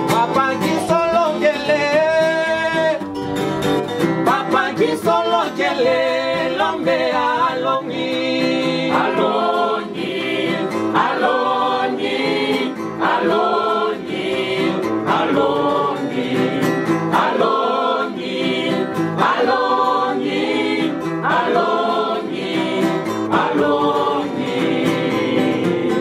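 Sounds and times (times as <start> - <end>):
choir singing a worship song: 4.3 - 26.0.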